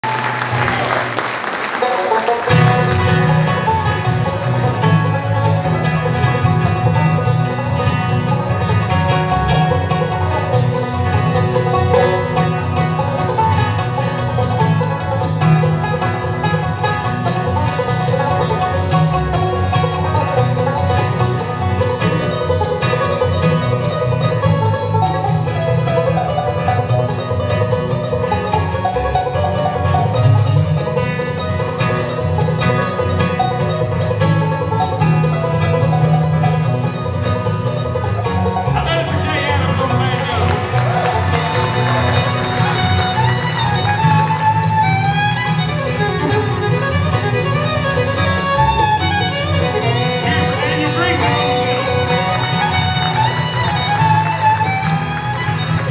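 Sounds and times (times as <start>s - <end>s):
bluegrass band instrumental: 0.0s - 55.9s.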